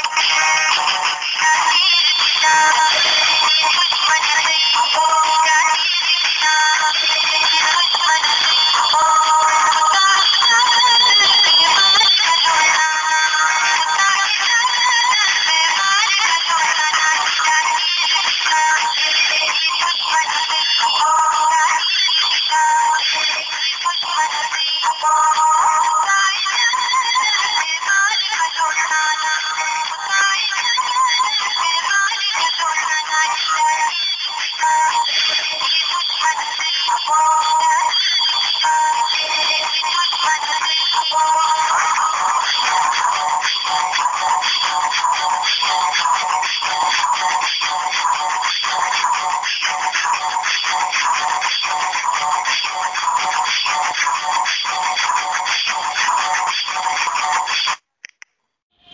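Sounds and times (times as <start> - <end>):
song with singing over music: 0.0 - 57.8.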